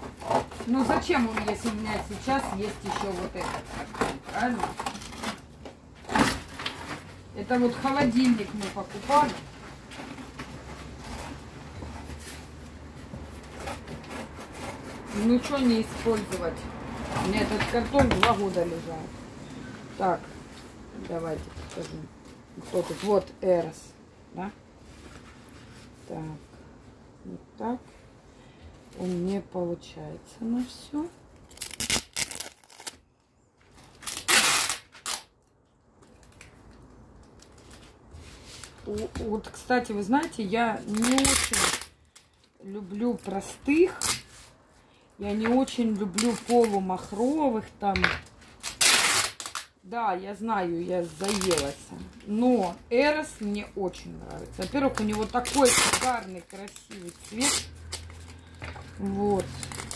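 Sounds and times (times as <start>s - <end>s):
cardboard rubbing and scraping: 0.0s - 18.7s
packing tape ripped off roll: 31.4s - 33.0s, 33.8s - 35.4s, 40.2s - 42.3s, 43.2s - 44.5s, 48.5s - 49.8s, 51.1s - 51.8s, 54.8s - 58.6s, 59.3s - 59.9s.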